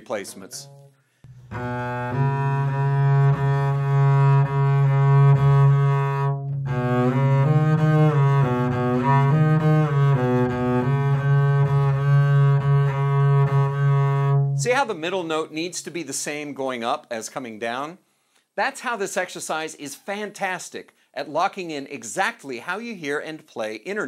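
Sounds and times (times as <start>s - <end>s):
bowed double bass notes: 0.0s - 15.2s.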